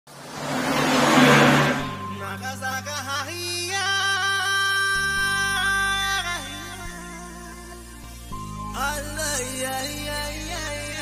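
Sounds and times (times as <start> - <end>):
vehicle passing: 0.1 - 2.4
low engine hum: 0.1 - 3.2.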